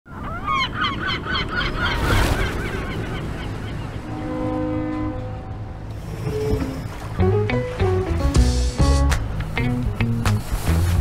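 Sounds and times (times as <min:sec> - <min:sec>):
gulls calling: 0:00.1 - 0:08.1.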